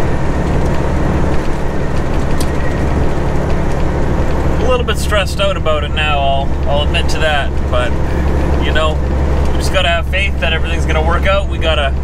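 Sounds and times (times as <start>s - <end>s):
diesel truck engine drone: 0.0s - 12.0s
road noise: 0.0s - 12.0s.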